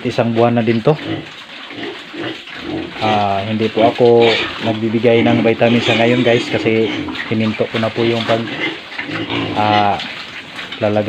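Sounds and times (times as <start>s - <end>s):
piglets chewing: 0.0s - 11.0s
piglets snuffling: 0.0s - 11.0s.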